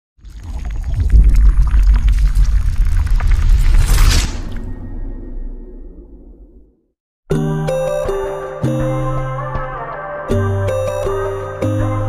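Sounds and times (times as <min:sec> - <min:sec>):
crackles: 0:00.2 - 0:06.6
deep rumble: 0:00.7 - 0:07.0.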